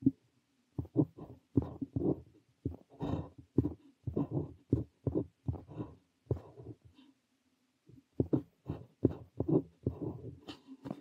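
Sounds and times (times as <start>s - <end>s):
pen nib scratching paper: 0.8s - 6.8s, 8.2s - 10.6s.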